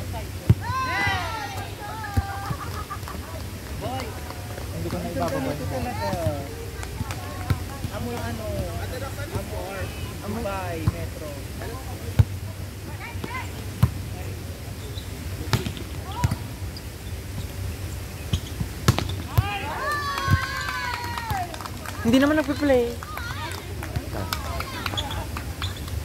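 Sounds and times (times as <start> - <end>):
people calling out: 0.6 - 3.5, 19.3 - 25.6.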